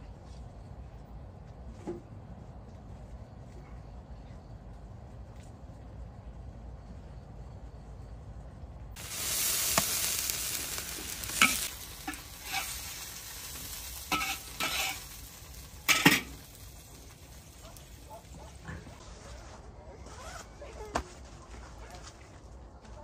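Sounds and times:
spatula scraping a wok: 9.0s - 17.6s
food sizzling in hot oil: 9.0s - 19.0s.

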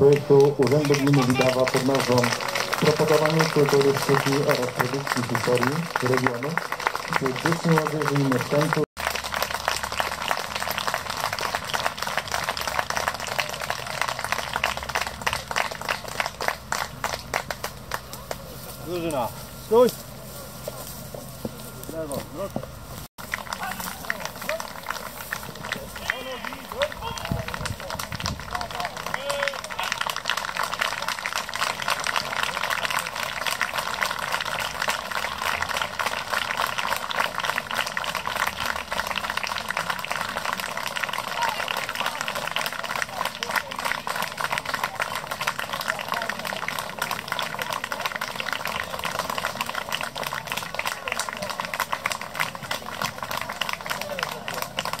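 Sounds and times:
voices: 0.0s - 8.9s, 10.2s - 55.0s
crowd applauding: 0.0s - 20.6s, 23.2s - 55.0s.

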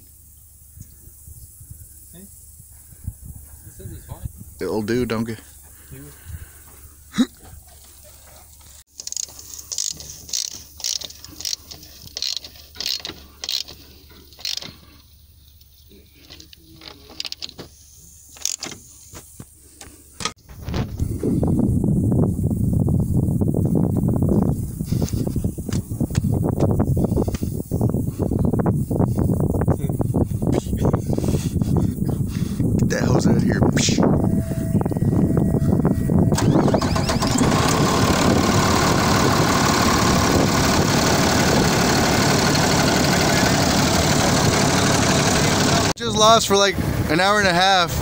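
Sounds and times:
diesel engine idling: 33.3s - 46.0s.

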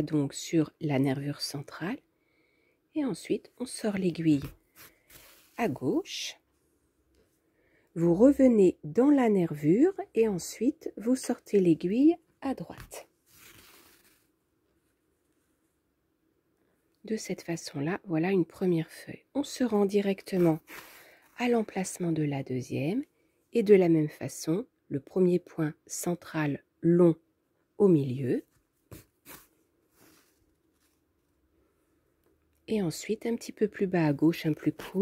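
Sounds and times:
yarn drawn through fabric: 3.6s - 6.2s, 12.6s - 14.4s, 20.1s - 21.8s, 28.8s - 31.2s.

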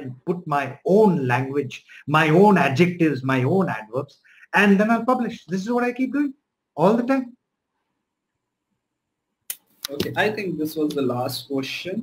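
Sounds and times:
man speaking: 0.0s - 7.4s, 9.8s - 12.0s.

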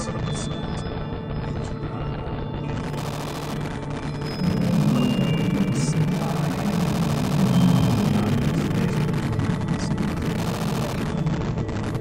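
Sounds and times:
synthesizer drone: 0.0s - 12.0s.

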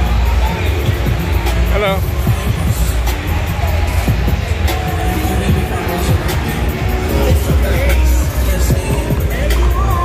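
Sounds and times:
crowd chatter: 0.0s - 10.0s
loud music with heavy bass: 0.0s - 10.0s.

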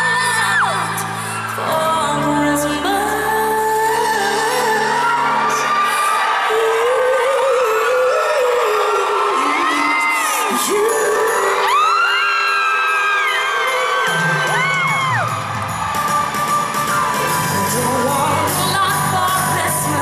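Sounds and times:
woman singing into microphone: 0.0s - 14.7s, 17.4s - 20.0s
crowd whooping and cheering: 0.0s - 20.0s
backing music: 10.4s - 20.0s.

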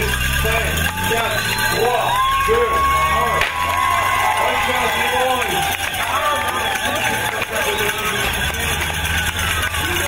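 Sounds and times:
crowd talking and calling out: 0.0s - 10.0s
cyclists rolling past: 0.0s - 10.0s.

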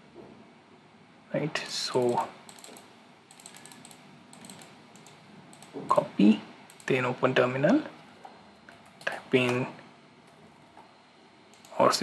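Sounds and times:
computer mouse clicks: 1.9s - 5.8s, 6.7s - 7.0s, 11.5s - 11.8s.

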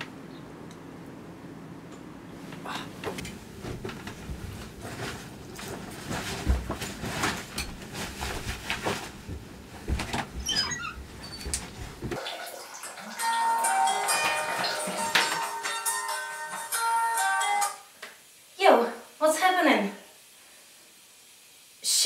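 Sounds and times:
bedding rustling and knocking: 3.0s - 12.2s
bright melody: 13.2s - 17.8s.

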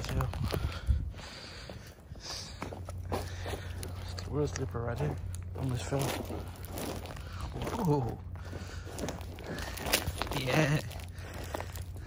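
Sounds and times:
footsteps crunching on ice: 0.0s - 12.0s
steady low hum: 0.0s - 12.0s.

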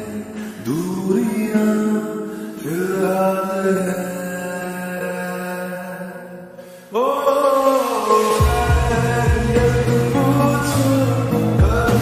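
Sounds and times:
person singing with reverb: 0.0s - 12.0s
deep bass beat: 8.4s - 12.0s.

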